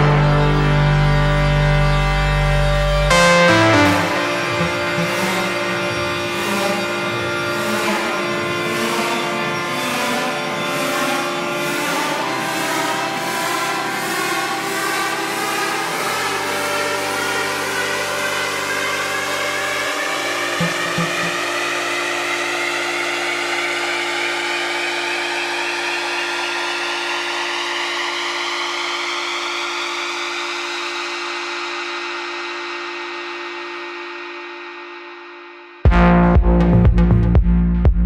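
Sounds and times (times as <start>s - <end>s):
rising synth sweep: 0.0s - 30.0s
held synthesizer chords: 0.0s - 38.0s.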